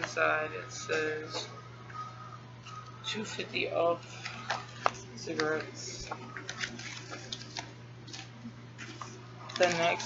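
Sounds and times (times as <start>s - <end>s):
steady low hum: 0.0s - 10.0s
paper pamphlet rustling: 4.0s - 10.0s.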